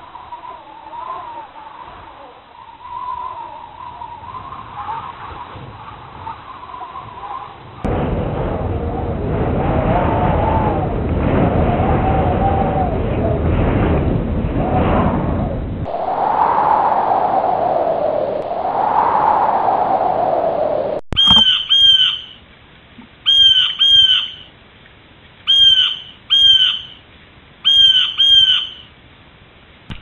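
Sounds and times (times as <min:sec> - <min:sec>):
bird calling short clear notes: 0:21.2 - 0:22.4, 0:25.5 - 0:27.0, 0:27.6 - 0:28.9.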